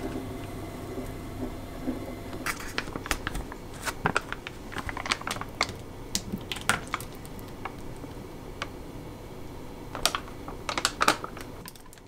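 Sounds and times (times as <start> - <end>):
plastic pouch crinkling: 2.4 - 8.0.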